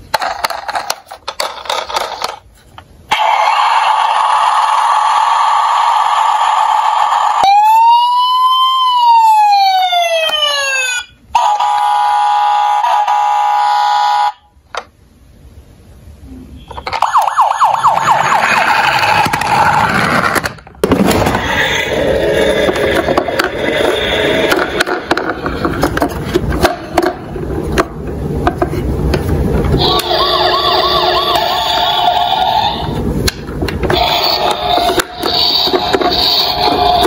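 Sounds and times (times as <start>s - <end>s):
toy siren: 3.1s - 14.4s, 16.8s - 19.4s, 29.8s - 33.0s.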